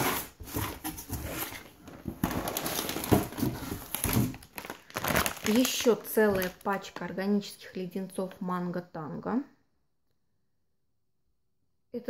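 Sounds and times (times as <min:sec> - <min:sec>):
packaging rustling and knocking: 0:00.0 - 0:07.0
plastic bags crinkling: 0:00.5 - 0:07.8.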